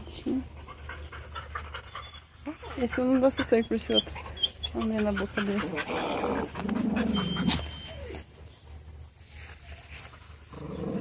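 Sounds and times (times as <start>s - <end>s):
dog growling: 5.0s - 7.7s, 10.5s - 11.0s.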